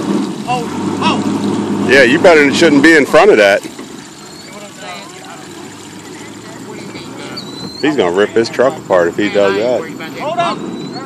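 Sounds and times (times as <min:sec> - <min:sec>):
pickup truck engine under load: 0:00.0 - 0:11.0
faint voices: 0:00.4 - 0:11.0.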